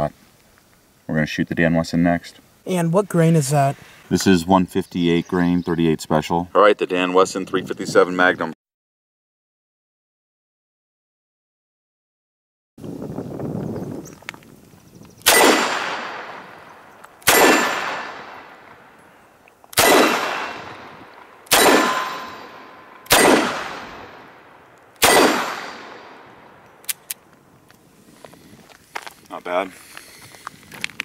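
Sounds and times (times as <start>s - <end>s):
revolver shots echoing: 15.3s - 18.8s, 19.8s - 26.6s.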